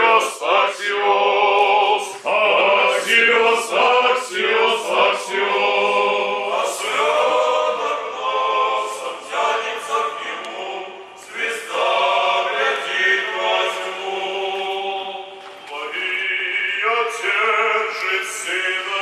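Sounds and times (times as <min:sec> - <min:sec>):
male choir singing a cappella: 0:00.0 - 0:19.0.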